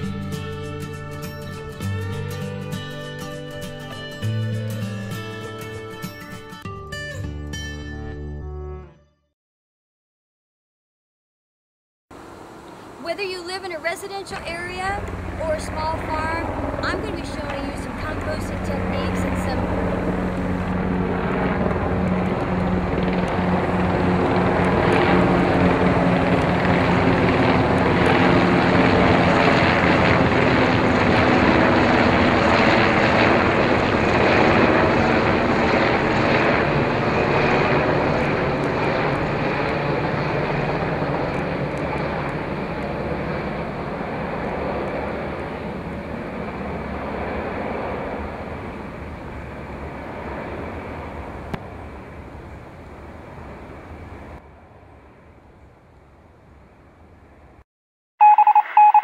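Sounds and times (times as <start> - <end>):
helicopter flying overhead: 0.0 - 6.6, 12.1 - 57.6.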